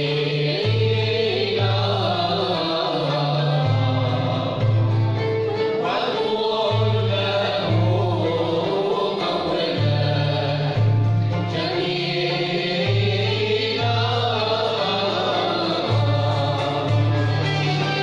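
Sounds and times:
group singing in chorus: 0.0s - 18.0s
ouds violins and cellos playing: 0.0s - 18.0s.

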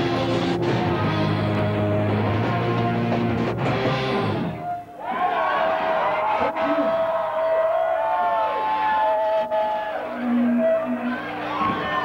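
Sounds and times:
electric guitar feedback: 0.0s - 4.9s, 10.0s - 12.0s
crowd noise: 0.0s - 12.0s.

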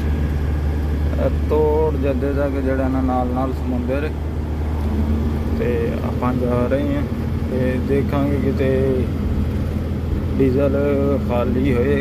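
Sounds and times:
truck engine and tyres droning: 0.0s - 12.0s
man talking: 1.1s - 4.2s, 5.5s - 9.2s, 10.4s - 12.0s.

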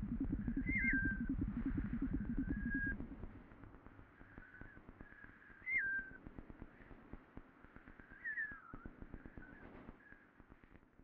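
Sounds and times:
light steady crackle: 0.0s - 11.0s
faint whistled tone: 0.2s - 3.0s, 4.4s - 6.3s, 8.0s - 10.4s.

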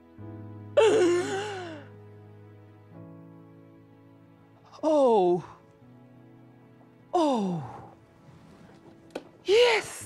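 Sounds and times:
soft background music: 0.0s - 10.0s
woman moaning: 0.8s - 1.9s, 7.2s - 7.8s.

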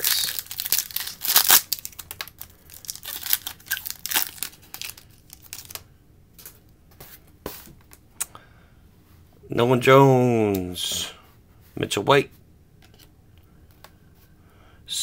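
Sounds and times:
plastic wrapper tearing and crinkling: 0.0s - 5.8s.

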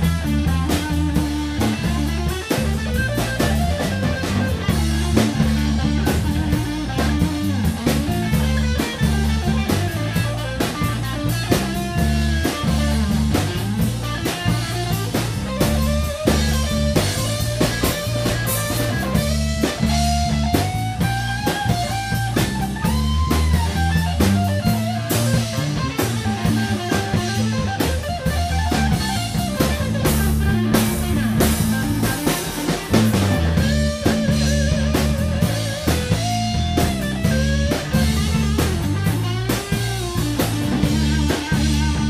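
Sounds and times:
bass guitar: 0.0s - 42.0s
drum kit: 0.0s - 42.0s
electric guitar lead: 0.0s - 42.0s.

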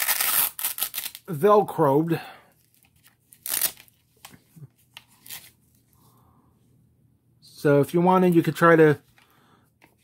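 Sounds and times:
velcro ripping: 0.0s - 1.3s, 3.3s - 3.9s, 5.1s - 5.6s.

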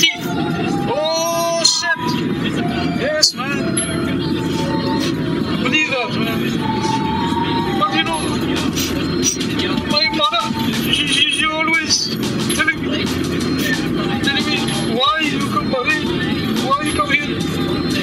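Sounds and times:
background music: 0.0s - 18.0s
indistinct voices: 0.0s - 18.0s.

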